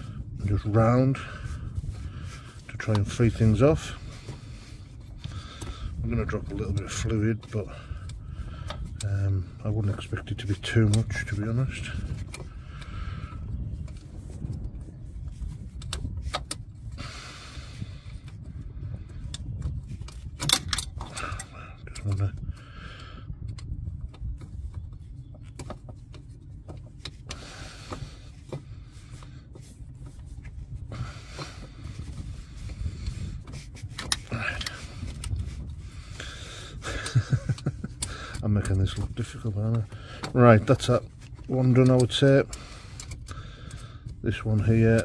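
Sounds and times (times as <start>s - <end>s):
metal pick scraping and clicking: 1.7s - 13.0s, 19.2s - 22.5s, 23.4s - 45.0s.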